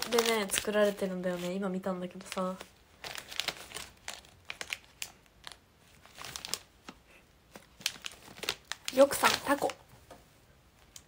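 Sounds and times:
plastic packaging crinkling: 0.0 - 9.9.

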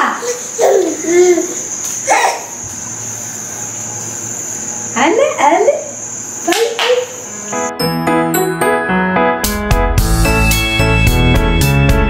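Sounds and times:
high even hiss: 0.0 - 7.8.

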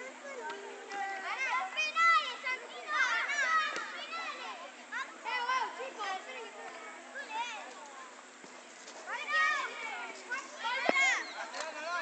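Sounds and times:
children playing in background: 0.0 - 12.0
child shouting: 1.2 - 4.6, 9.1 - 11.4.

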